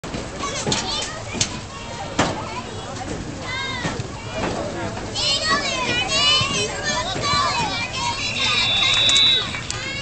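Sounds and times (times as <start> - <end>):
crowd shouting and calling: 5.2 - 10.0.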